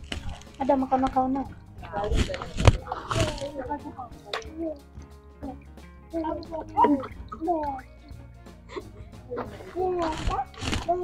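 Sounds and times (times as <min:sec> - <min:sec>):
women talking: 0:00.0 - 0:04.5
background music: 0:00.0 - 0:11.0
liquid soap gurgling: 0:00.0 - 0:11.0.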